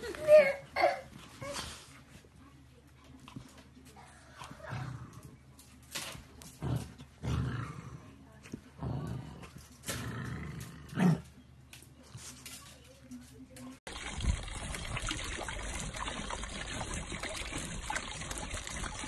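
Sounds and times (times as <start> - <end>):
dogs growling in play: 4.0 - 11.4.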